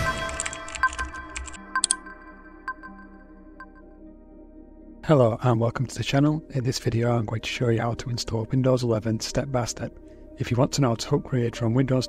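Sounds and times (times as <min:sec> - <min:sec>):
keyboard typing clicks: 0:00.0 - 0:03.0.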